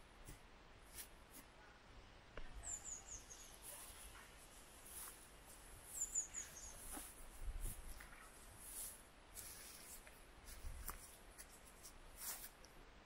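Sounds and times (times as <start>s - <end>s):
small songbird chirping: 2.4s - 4.2s, 4.8s - 8.9s.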